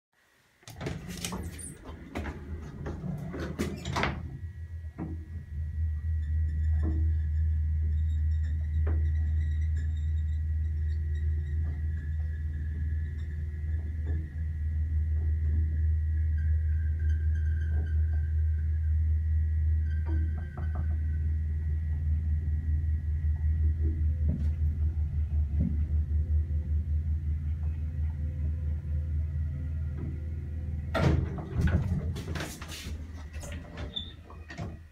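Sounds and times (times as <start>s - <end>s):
elevator low hum: 0.6s - 34.9s
elevator clacks and rattles: 0.7s - 5.5s, 23.5s - 28.6s, 29.8s - 34.9s
faint high whine: 0.7s - 31.2s.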